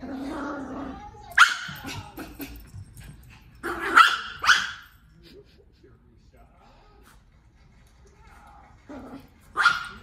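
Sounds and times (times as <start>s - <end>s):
small dog barking: 3.6s - 4.8s, 9.6s - 10.0s.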